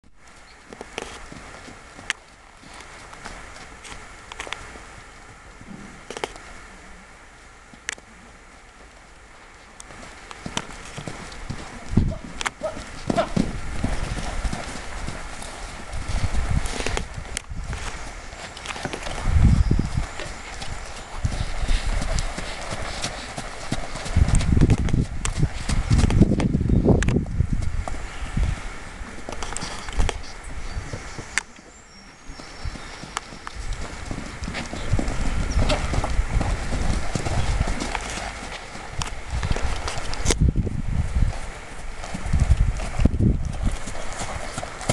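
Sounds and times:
horse hooves thudding on sand: 0.2s - 6.5s, 7.7s - 44.9s.

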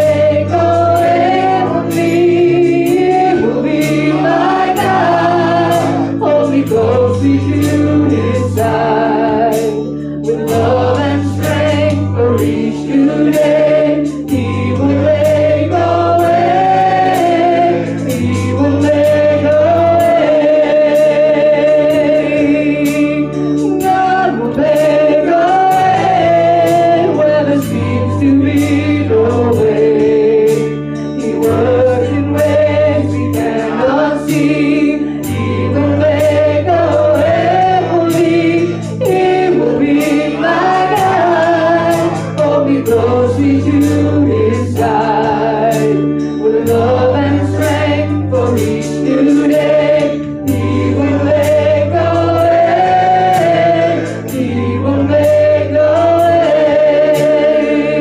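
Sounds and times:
choir singing gospel song: 0.0s - 58.0s.

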